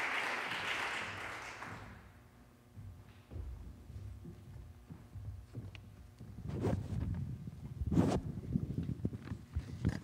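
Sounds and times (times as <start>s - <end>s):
footsteps on wooden stage: 1.7s - 10.0s.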